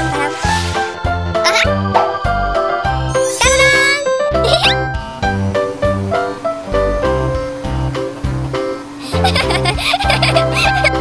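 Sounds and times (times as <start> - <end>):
bright background music: 0.0 - 11.0
cartoon baby giggling: 1.4 - 1.8, 9.0 - 11.0.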